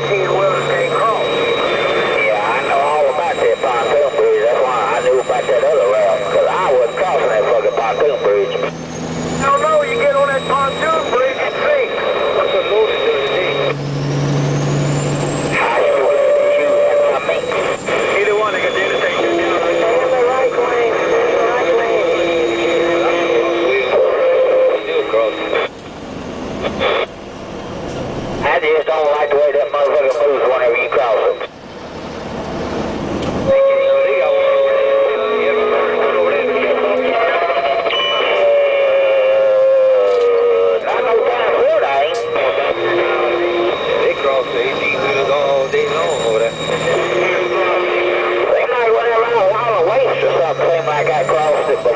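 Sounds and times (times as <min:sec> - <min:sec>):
distorted radio voices: 0:00.0 - 0:25.8, 0:26.5 - 0:51.9
long held tone sinking in pitch: 0:00.0 - 0:26.6, 0:31.2 - 0:51.9
truck driving: 0:00.0 - 0:51.9
wavering high whine: 0:00.0 - 0:51.9
whistling tones: 0:41.4 - 0:48.4.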